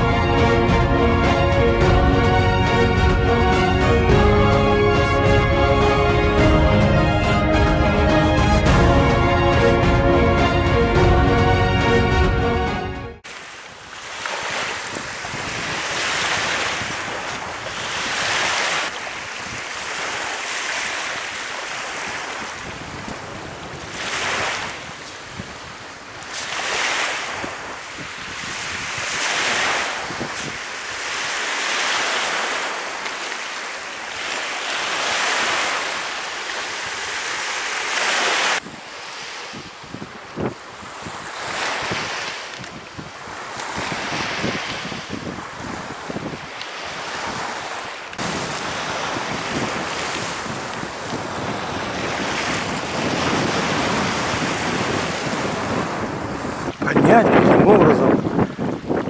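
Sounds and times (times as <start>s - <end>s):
small waves on pebble shore: 13.2s - 57.8s
wind buffeting microphone: 14.4s - 18.6s, 21.8s - 31.3s, 38.6s - 59.0s.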